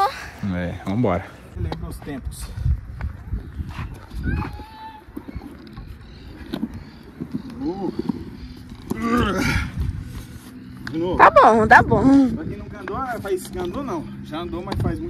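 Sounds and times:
skateboard rolling on concrete: 0:00.0 - 0:11.0
voices: 0:10.5 - 0:15.0.

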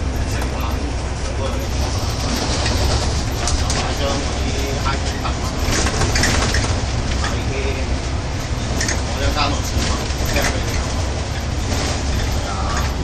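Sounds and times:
bus engine and road rumble: 0:00.0 - 0:13.0
bodywork rattles and clicks: 0:00.2 - 0:13.0.

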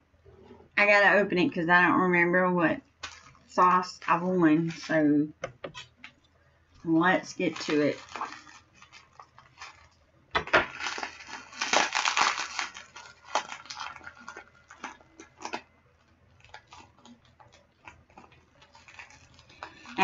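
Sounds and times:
plastic packaging crinkling: 0:02.9 - 0:05.1, 0:05.8 - 0:20.0
small crackles and clicks: 0:03.0 - 0:04.9, 0:05.8 - 0:10.0, 0:10.7 - 0:20.0.

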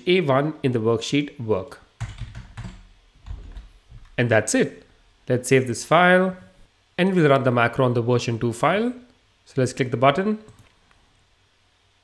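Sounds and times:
computer keyboard typing: 0:02.0 - 0:03.7, 0:10.5 - 0:10.7.

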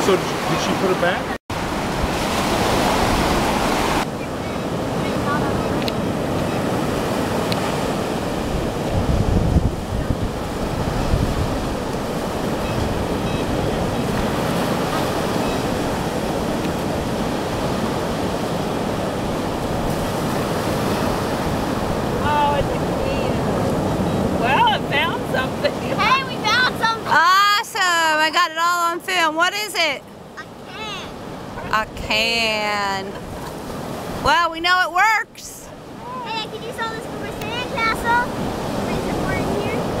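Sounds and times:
wind rumbling on microphone: 0:00.0 - 0:27.0, 0:35.7 - 0:40.0
ocean surf breaking: 0:00.0 - 0:40.0.

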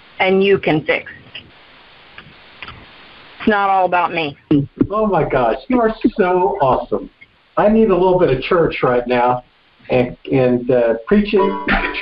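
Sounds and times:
phone line hiss: 0:00.0 - 0:12.0.

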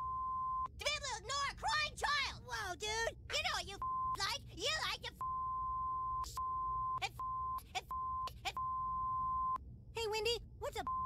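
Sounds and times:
censor bleep: 0:00.0 - 0:00.7, 0:05.2 - 0:09.6
boy shouting angrily: 0:00.8 - 0:05.2.

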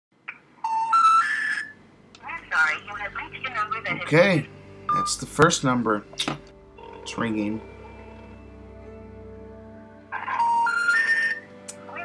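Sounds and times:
rising telephone beeps: 0:00.6 - 0:01.8, 0:04.9 - 0:05.2, 0:10.2 - 0:11.5.

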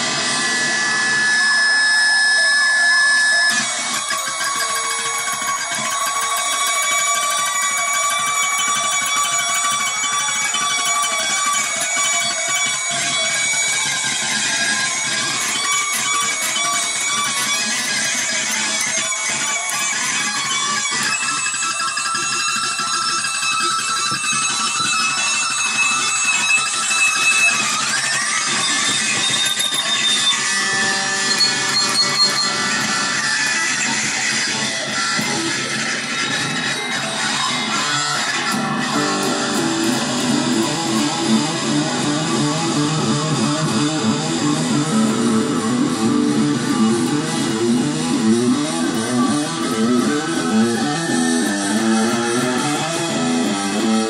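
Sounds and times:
electric guitar strummed and picked: 0:00.0 - 0:54.0.

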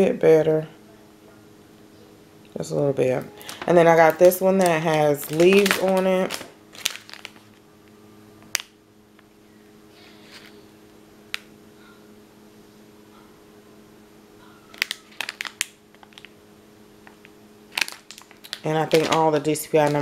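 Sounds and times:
plastic sleeve crinkling: 0:03.4 - 0:07.6, 0:14.7 - 0:16.4, 0:17.0 - 0:20.0.

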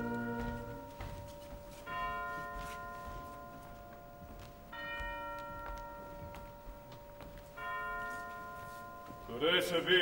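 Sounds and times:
deep bell tolling: 0:00.0 - 0:10.0.

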